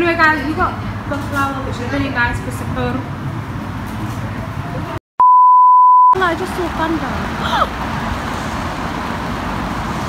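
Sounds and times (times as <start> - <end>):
loud steady test-tone beep: 5.2 - 6.2.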